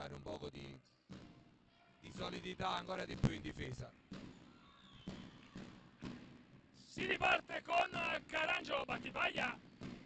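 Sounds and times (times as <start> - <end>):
quiet arena background: 0.0 - 10.0.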